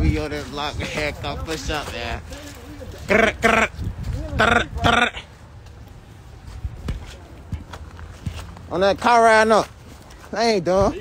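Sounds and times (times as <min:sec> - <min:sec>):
footsteps: 0:00.0 - 0:11.0.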